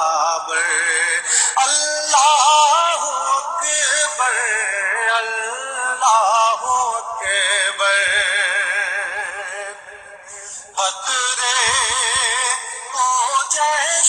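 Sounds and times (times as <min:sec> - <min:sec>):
man singing devotional song: 0:00.0 - 0:14.0.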